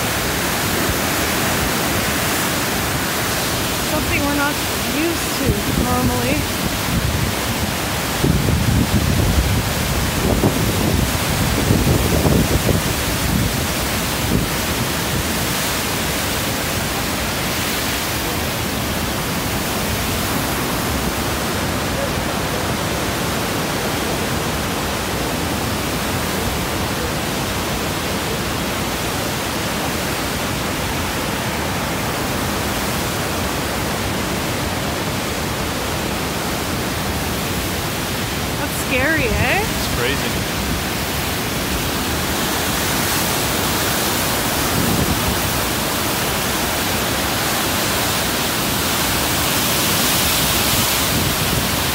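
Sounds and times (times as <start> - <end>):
river rapids rushing: 0.0 - 51.9
wind buffeting microphone: 5.4 - 15.4.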